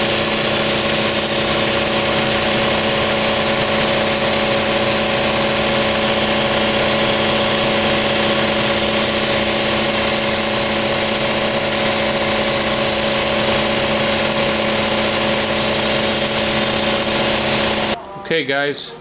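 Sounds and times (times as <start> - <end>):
air spray gun hissing: 0.0 - 18.0
motor hum: 0.0 - 18.0.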